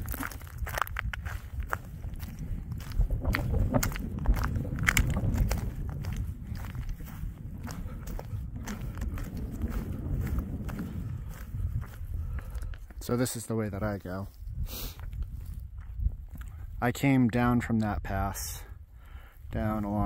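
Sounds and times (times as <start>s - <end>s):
footsteps on loose scree: 0.0s - 14.3s
wind rumbling on microphone: 0.0s - 20.0s.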